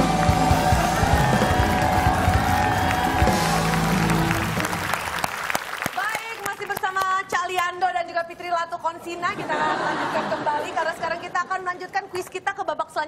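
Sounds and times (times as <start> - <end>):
upbeat theme music with drums and guitar: 0.0 - 5.3
studio audience applause: 0.0 - 7.3.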